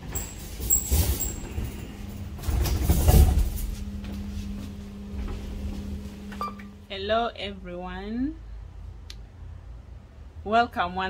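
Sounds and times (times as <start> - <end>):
trolley wheels rumbling and knocking: 0.0 - 6.4.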